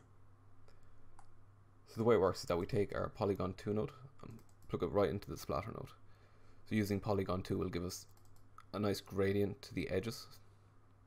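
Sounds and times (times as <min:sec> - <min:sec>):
low steady hum: 0:00.0 - 0:11.0
computer mouse clicks: 0:04.3 - 0:04.9, 0:08.0 - 0:08.7.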